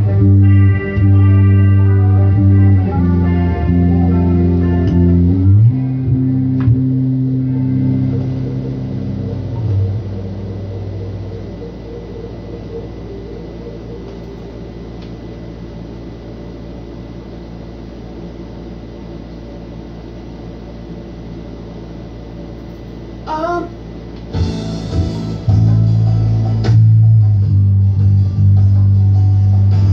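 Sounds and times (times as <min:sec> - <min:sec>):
amplifier hum and hiss: 0:00.0 - 0:29.9
electric bass guitar notes: 0:00.0 - 0:29.9.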